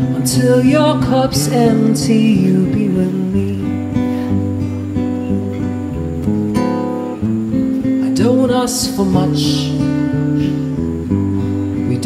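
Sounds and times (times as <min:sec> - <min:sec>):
person singing: 0:00.0 - 0:04.4, 0:07.9 - 0:10.8, 0:11.6 - 0:12.0
acoustic guitar strumming chords: 0:00.0 - 0:12.0.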